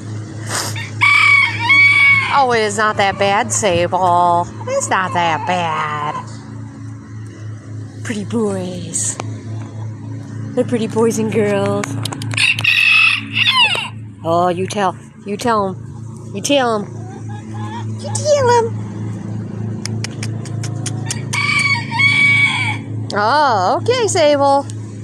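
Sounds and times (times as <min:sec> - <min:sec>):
rooster crowing: 0:00.8 - 0:03.4, 0:12.3 - 0:14.0, 0:21.0 - 0:23.0.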